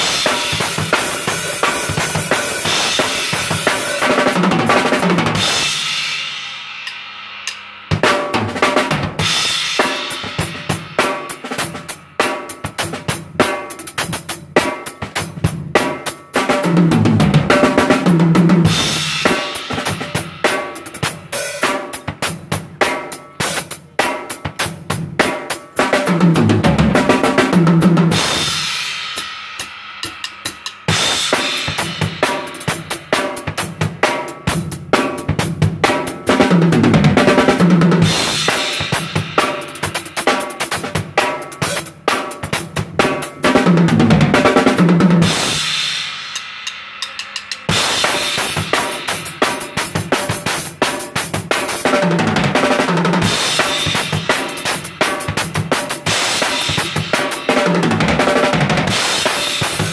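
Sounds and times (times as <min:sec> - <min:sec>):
drum kit beat with tom fills: 0:00.0 - 0:59.9.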